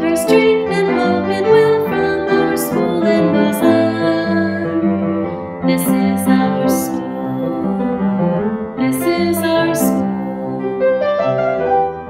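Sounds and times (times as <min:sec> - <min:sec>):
piano accompaniment: 0:00.0 - 0:12.0
people singing: 0:00.2 - 0:04.8, 0:08.8 - 0:11.0.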